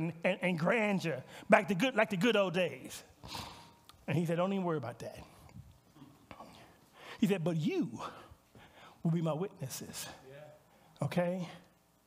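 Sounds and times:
man speaking: 4.0 - 5.4, 7.2 - 8.4, 9.0 - 11.7.

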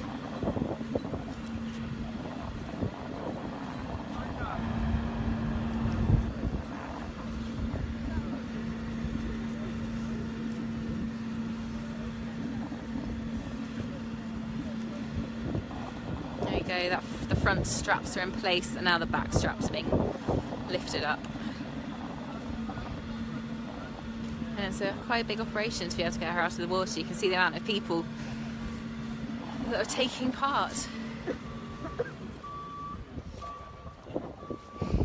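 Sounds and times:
engine humming: 0.0 - 35.0.

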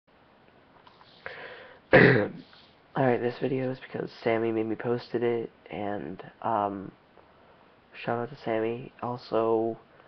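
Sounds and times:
person sniffing: 0.9 - 2.8
person clearing throat: 1.9 - 2.5.

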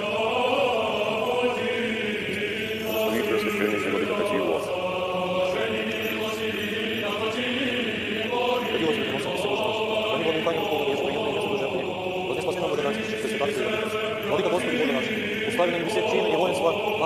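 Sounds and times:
voices singing church chant: 0.0 - 17.0.

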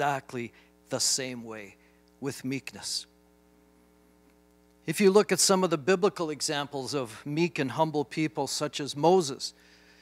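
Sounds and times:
person speaking: 0.0 - 3.1
faint electrical mains hum: 0.0 - 10.0.

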